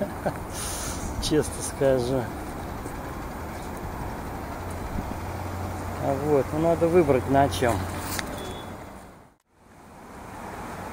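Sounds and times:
street traffic: 0.0s - 10.9s.

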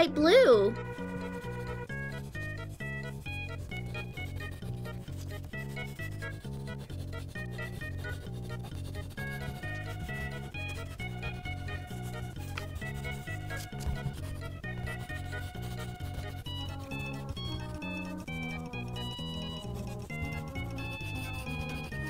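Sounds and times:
pencil scratching on paper: 0.7s - 22.0s.

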